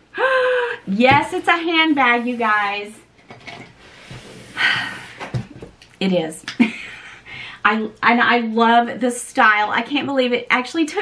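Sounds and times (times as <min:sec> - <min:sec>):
woman sighing: 0:00.1 - 0:00.9.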